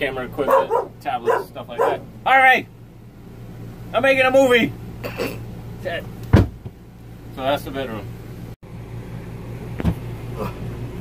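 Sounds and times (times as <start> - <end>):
steady low hum: 0.0 - 11.0
sharp thump: 6.3 - 6.8.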